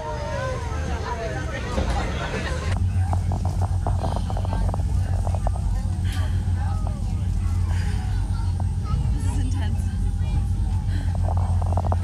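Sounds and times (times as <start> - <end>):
ferry engines droning: 0.0 - 12.0.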